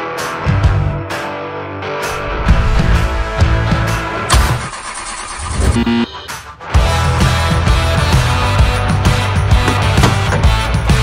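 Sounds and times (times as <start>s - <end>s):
loud hit: 2.1s - 4.8s
starter motor cranking engine: 4.3s - 5.7s.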